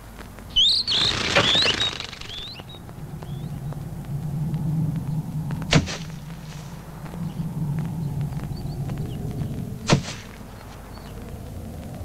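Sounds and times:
sharp landing thud: 0:05.7 - 0:06.2, 0:09.9 - 0:10.3.

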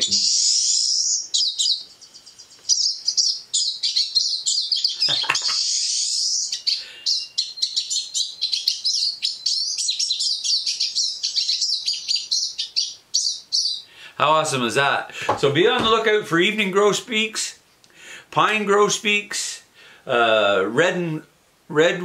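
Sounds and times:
birdsong through a speaker: 0:00.0 - 0:17.6.

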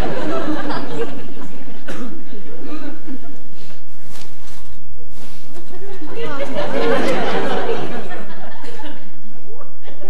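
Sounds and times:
studio audience laughing: 0:00.0 - 0:01.6, 0:05.7 - 0:10.0
faint rustling: 0:03.4 - 0:06.1.

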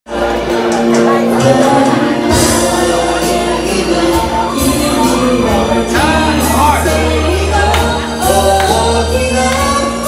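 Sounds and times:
amplified singing: 0:00.1 - 0:10.0
loud backing music: 0:00.1 - 0:10.0.

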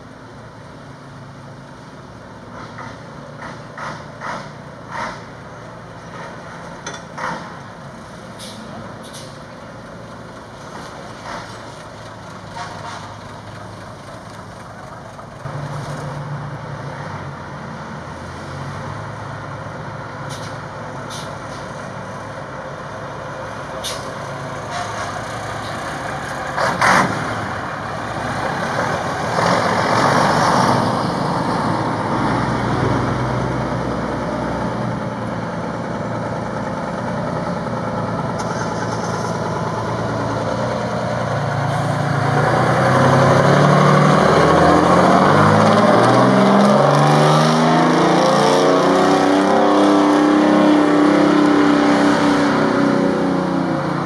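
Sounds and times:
fire truck engines running: 0:00.0 - 0:54.0
air brake hiss: 0:08.4 - 0:09.4.

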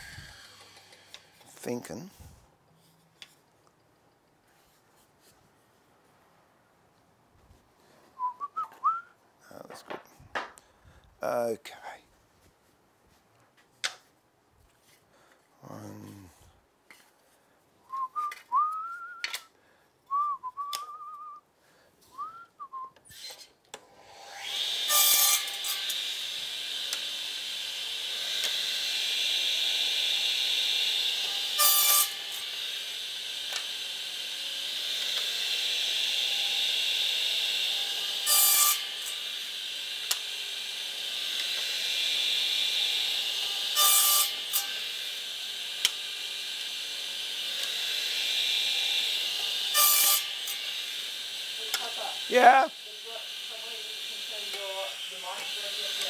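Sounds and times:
steady hiss: 0:00.0 - 0:02.1
person whistling: 0:08.2 - 0:09.2, 0:17.9 - 0:19.5, 0:20.1 - 0:21.5, 0:22.1 - 0:23.0.

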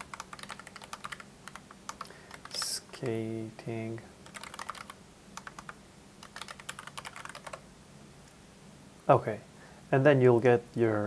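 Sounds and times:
computer keyboard typing: 0:00.0 - 0:03.3, 0:04.2 - 0:07.6.

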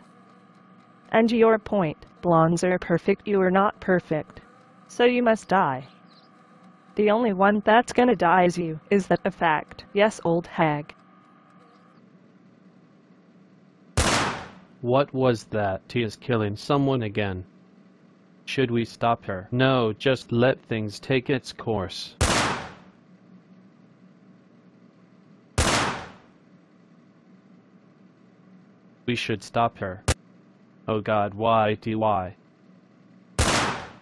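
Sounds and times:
faint room hum: 0:00.0 - 0:34.0
gunshot crack: 0:14.0 - 0:14.6, 0:22.2 - 0:22.9, 0:25.6 - 0:26.2, 0:33.4 - 0:34.0.

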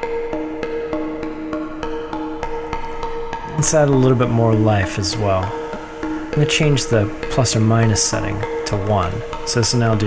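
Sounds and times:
synthesizer percussive plucks: 0:00.0 - 0:10.0.

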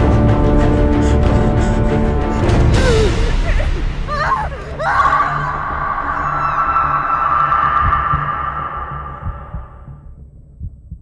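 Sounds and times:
low pulsing rumble: 0:05.1 - 0:11.0
sustained high ringing tone: 0:05.5 - 0:10.0.

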